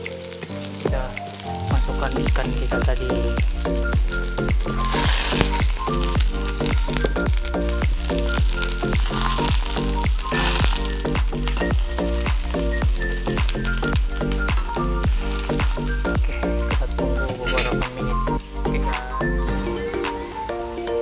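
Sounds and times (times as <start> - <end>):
fish sizzling in hot oil: 0.0 - 17.8
background music with steady beat: 0.0 - 21.0.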